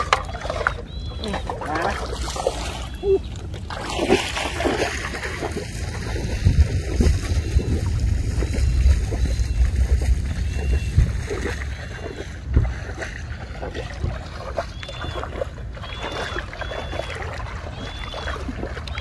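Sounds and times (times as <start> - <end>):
wading through water: 0.0 - 19.0
water sloshing and splashing: 0.0 - 19.0
wind on microphone: 4.1 - 15.4.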